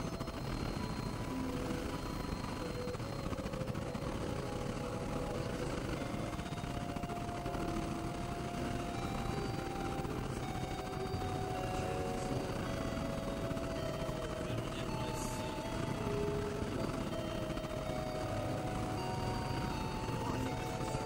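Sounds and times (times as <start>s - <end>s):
thin sustained synth tones: 0.0s - 21.0s.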